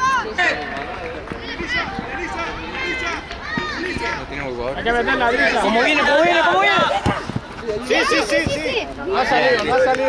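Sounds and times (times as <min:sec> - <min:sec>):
voices calling and shouting: 0:00.0 - 0:10.0.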